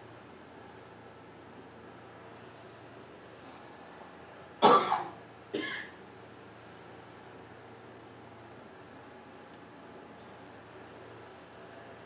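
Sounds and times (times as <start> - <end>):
person coughing: 4.6 - 5.9.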